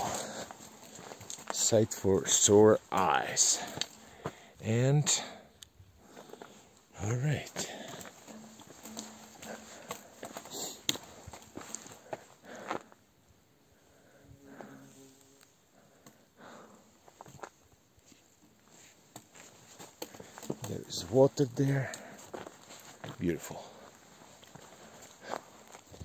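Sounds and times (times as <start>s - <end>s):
footsteps on stony ground: 0.0s - 5.4s, 6.0s - 13.0s, 17.1s - 26.0s.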